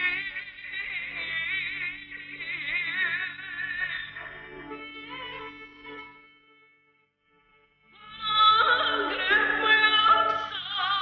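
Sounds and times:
person singing with vibrato: 0:00.0 - 0:05.0, 0:08.0 - 0:11.0.

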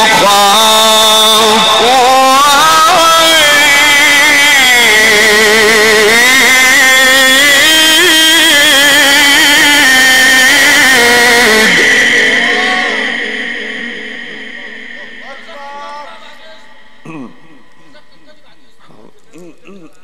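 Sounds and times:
man chanting recitation: 0:00.0 - 0:20.0.

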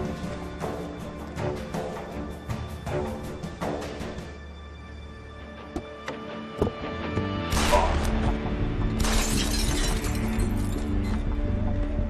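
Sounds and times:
dramatic background music: 0:00.0 - 0:12.0
glass shattering: 0:09.0 - 0:11.0.

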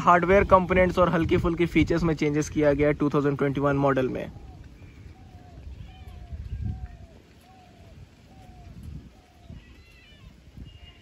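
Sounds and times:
wind rumble on microphone: 0:00.0 - 0:11.0
faint high wavering animal calls: 0:03.9 - 0:11.0.

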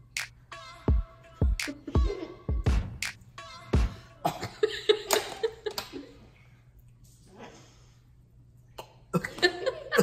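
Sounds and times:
man coughing: 0:04.2 - 0:04.6, 0:08.8 - 0:10.0.

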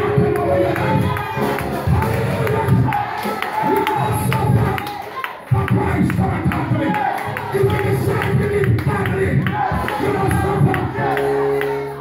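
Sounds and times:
steady percussive beat: 0:00.0 - 0:04.9, 0:05.5 - 0:11.7
congregation singing praise music: 0:00.0 - 0:12.0
crowd singing and shouting: 0:00.0 - 0:12.0.

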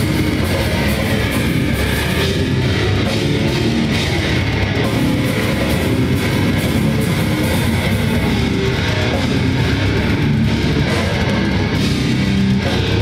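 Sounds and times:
metal band playing: 0:00.0 - 0:13.0.

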